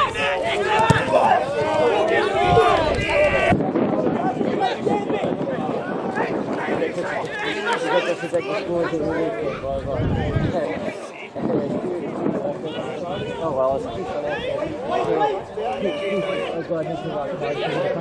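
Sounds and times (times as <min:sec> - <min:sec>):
people calling out and chattering: 0:00.0 - 0:18.0.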